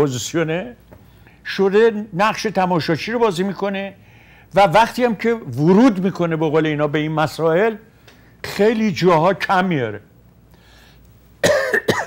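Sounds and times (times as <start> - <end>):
man coughing: 11.4 - 12.0.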